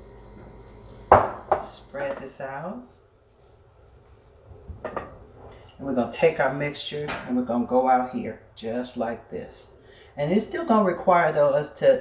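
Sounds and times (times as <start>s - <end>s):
hands rubbing flour on countertop: 2.0s - 6.6s.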